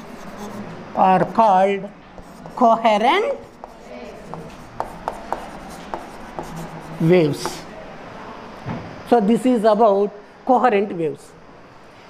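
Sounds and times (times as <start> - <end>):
chalk scratching: 0.0 - 1.5, 2.2 - 7.7
chalk tapping on blackboard: 2.2 - 7.7.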